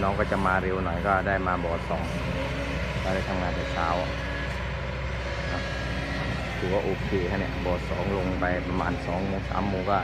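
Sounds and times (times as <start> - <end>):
excavator diesel engine running: 0.0 - 10.0.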